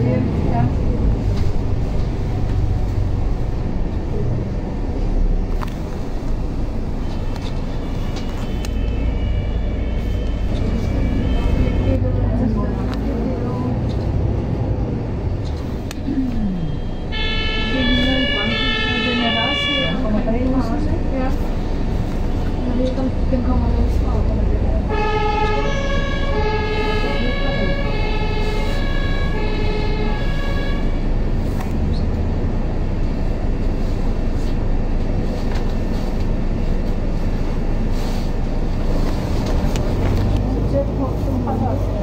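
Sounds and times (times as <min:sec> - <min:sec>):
bus engine and road rumble: 0:00.0 - 0:42.0
two-tone emergency siren: 0:08.0 - 0:12.0, 0:16.5 - 0:20.2, 0:24.9 - 0:31.0.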